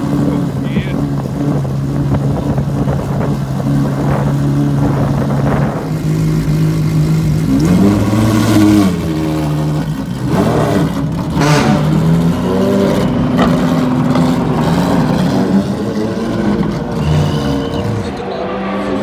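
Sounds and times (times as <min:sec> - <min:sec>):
car engine revving loudly: 0:00.0 - 0:19.0.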